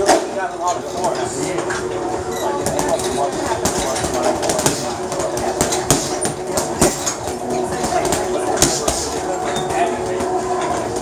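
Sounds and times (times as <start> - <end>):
punches thudding on heavy bag: 3.6 - 9.1.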